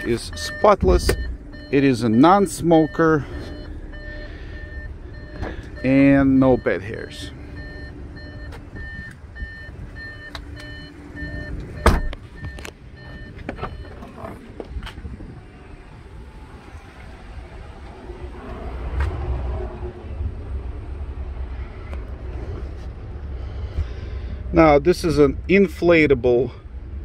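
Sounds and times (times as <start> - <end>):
vehicle warning chime beeping: 0.0 - 14.4
low rumbling noise: 0.0 - 25.6
car door shutting thump: 11.8 - 12.2.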